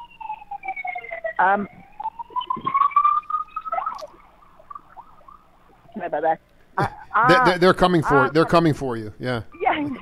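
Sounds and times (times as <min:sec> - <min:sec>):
emergency vehicle siren wailing: 0:00.0 - 0:04.1.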